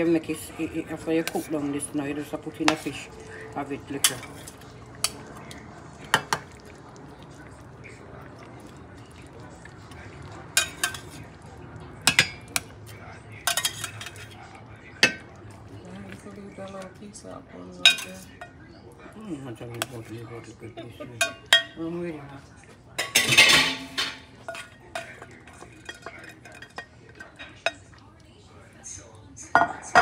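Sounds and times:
low background hum: 0:00.0 - 0:30.0
utensil clinking against metal pan: 0:23.0 - 0:27.8.

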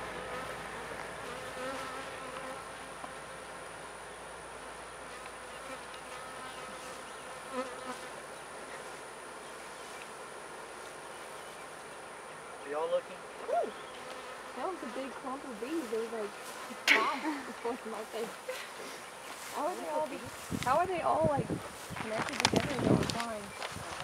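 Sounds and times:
honeybees buzzing: 0:00.0 - 0:24.0.

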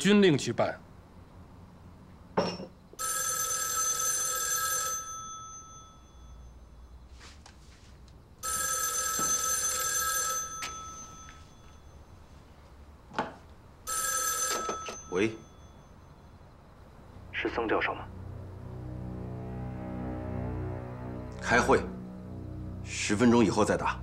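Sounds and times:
telephone bell ringing: 0:03.0 - 0:06.7, 0:08.4 - 0:12.2, 0:13.9 - 0:16.2.

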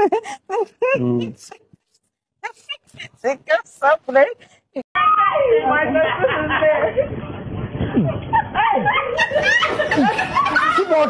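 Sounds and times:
people shouting and laughing: 0:04.9 - 0:11.0
falling cries: 0:05.0 - 0:05.8.

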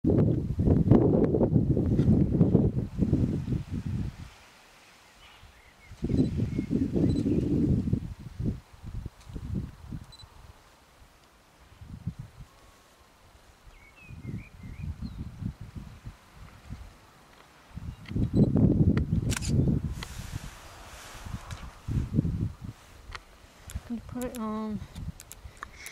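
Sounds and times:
wind buffeting microphone: 0:00.0 - 0:04.4, 0:05.3 - 0:10.6, 0:11.6 - 0:12.6, 0:13.3 - 0:17.1, 0:17.7 - 0:25.9
sharp handling clicks: 0:23.1 - 0:25.9.

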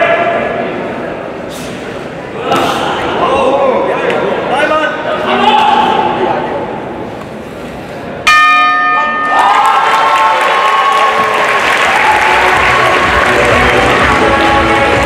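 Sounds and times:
boxing ring bell: 0:08.3 - 0:09.4
crowd applause and cheering: 0:09.2 - 0:15.0.

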